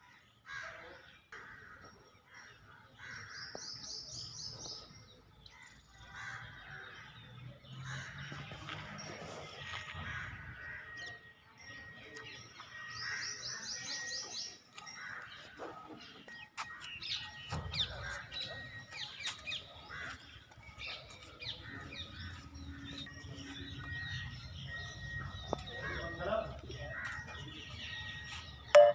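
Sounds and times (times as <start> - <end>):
birds chirping: 0.2 - 28.9
crows cawing: 6.0 - 7.1, 9.7 - 11.2.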